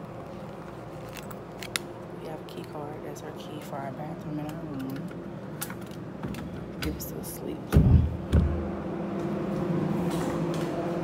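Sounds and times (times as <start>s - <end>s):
low mechanical hum: 0.0s - 11.0s
low thumps: 7.7s - 8.8s.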